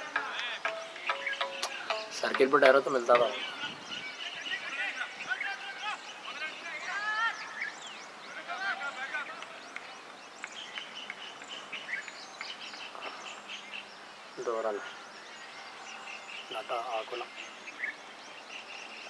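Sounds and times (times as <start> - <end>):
birds chirping and calling: 0.0 - 19.0
faint distant voices: 0.0 - 19.0.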